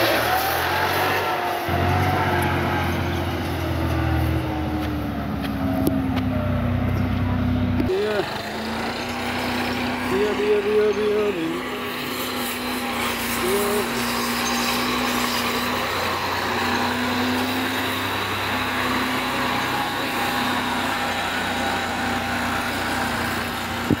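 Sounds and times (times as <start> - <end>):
tractor diesel engine running: 0.0 - 24.0.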